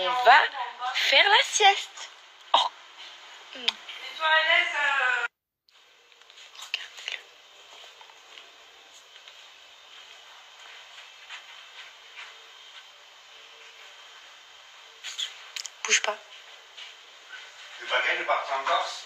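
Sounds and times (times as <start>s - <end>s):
low steady hiss: 0.0s - 19.0s
soft whispery sounds: 5.7s - 19.0s.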